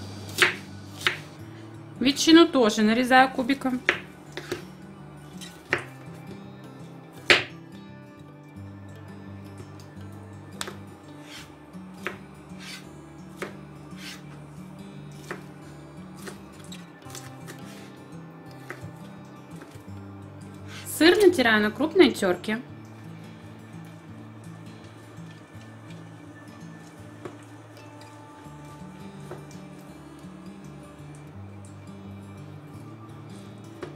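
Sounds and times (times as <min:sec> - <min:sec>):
soft background music: 0:00.0 - 0:33.9
knife chopping on wooden board: 0:00.3 - 0:01.3, 0:03.8 - 0:04.6, 0:07.2 - 0:07.5, 0:10.6 - 0:12.8, 0:13.4 - 0:14.3, 0:15.2 - 0:15.5.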